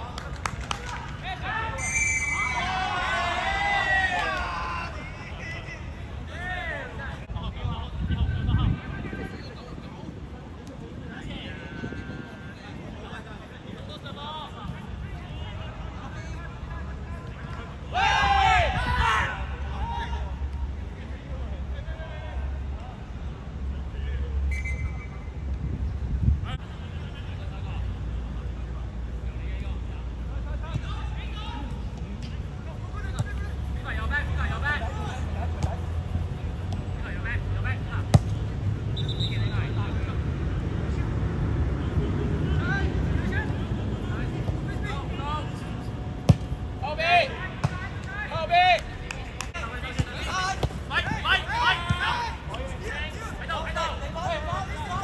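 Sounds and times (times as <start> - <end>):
players calling and shouting: 0.0 - 9.8, 10.5 - 25.6, 26.4 - 55.0
ball being kicked: 38.1 - 38.4, 46.3 - 46.6.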